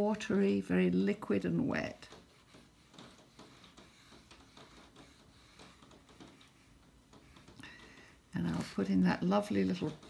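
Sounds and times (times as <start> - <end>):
brush ticking on wet paper: 0.2 - 10.0.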